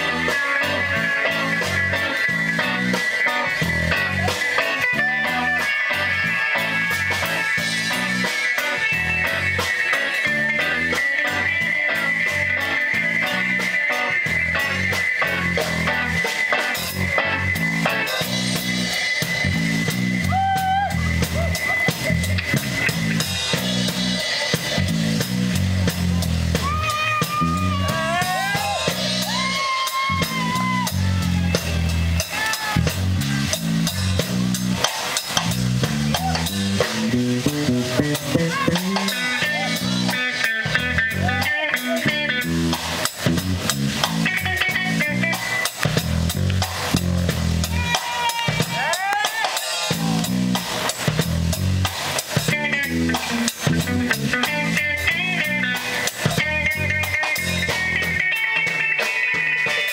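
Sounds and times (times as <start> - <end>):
drum kit: 0.0 - 59.9
electric bass: 0.0 - 59.9
electric guitar lead lines: 0.0 - 59.9.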